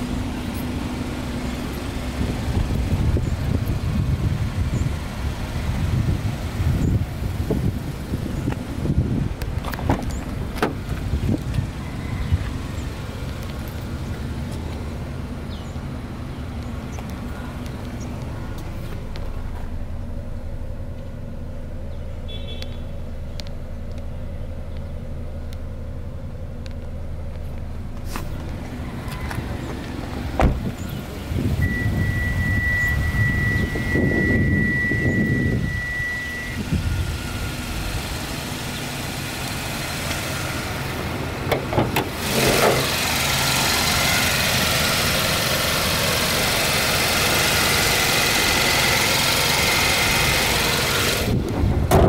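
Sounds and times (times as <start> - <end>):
car engine idling: 0.0 - 52.0
thump: 30.4 - 30.7
steady high beep: 31.6 - 36.6.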